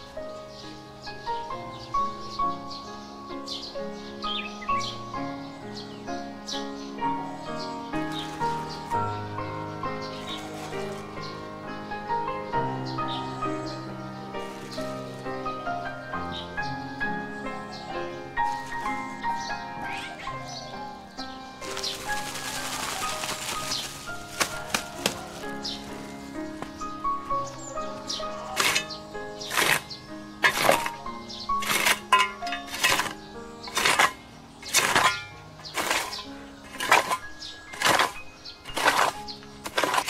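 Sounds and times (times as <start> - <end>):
background music: 0.0 - 40.0
hoe chopping dry soil: 21.6 - 26.9, 28.1 - 40.0.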